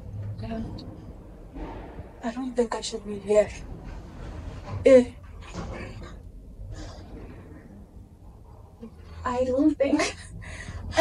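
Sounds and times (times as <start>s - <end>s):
low steady rumble: 0.0s - 11.0s.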